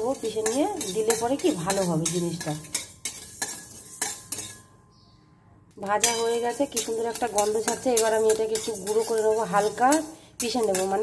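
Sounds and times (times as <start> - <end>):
seeds dry-roasting: 0.0 - 4.7, 5.8 - 11.0
steel spatula scraping a pan: 0.0 - 4.8, 6.0 - 11.0.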